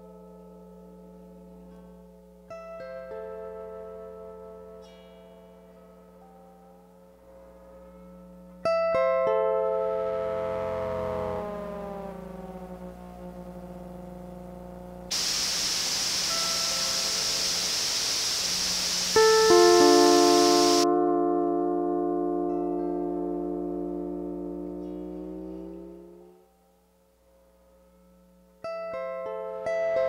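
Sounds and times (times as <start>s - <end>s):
low mains hum: 9.5s - 20.9s
loud processed noise hiss: 15.1s - 20.9s
lap steel guitar chord: 15.1s - 26.4s.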